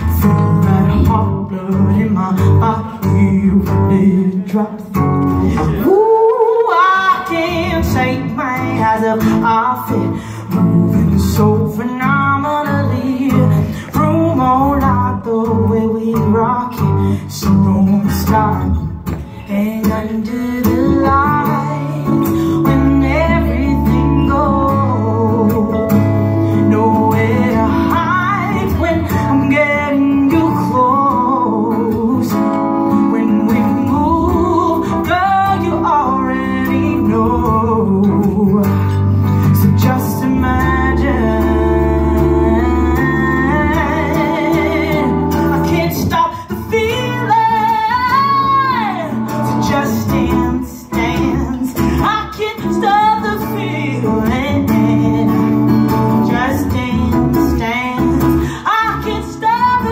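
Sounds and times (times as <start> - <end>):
guitar: 0.0 - 59.9
woman singing: 0.0 - 59.9.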